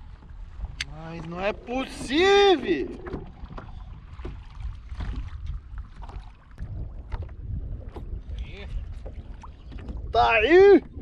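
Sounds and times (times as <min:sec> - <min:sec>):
water lapping: 0:00.0 - 0:11.0
wind on microphone: 0:00.0 - 0:11.0.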